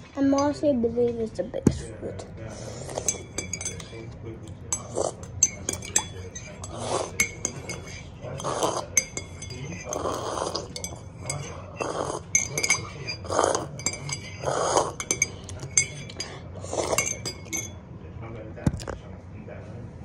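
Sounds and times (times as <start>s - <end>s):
metal spoon clinking glass: 2.8s - 17.8s
breathy mouth sounds: 9.7s - 17.2s.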